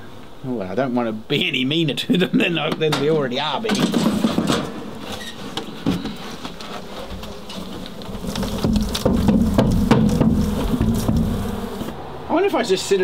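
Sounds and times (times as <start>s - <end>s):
honey bees buzzing: 4.4s - 12.2s
clicks and knocks from hive box: 5.5s - 11.9s.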